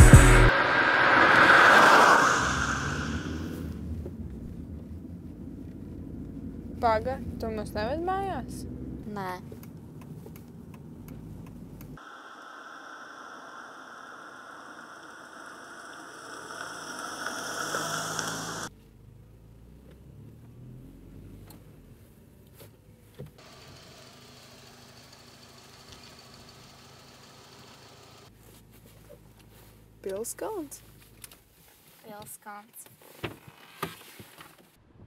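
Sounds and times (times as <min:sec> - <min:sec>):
car engine and road noise: 0:00.0 - 0:35.0
steady hum: 0:11.9 - 0:18.7.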